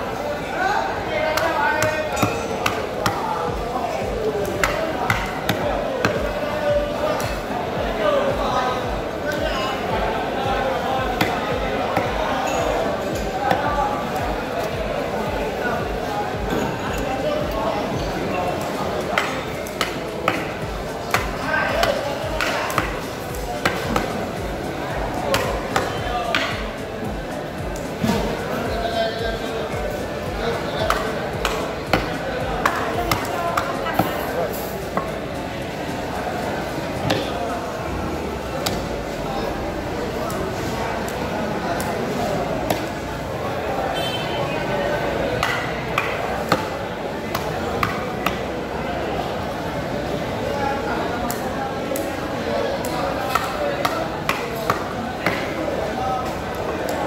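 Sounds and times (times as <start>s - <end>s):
background music: 0.0s - 41.1s
voices: 0.0s - 57.0s.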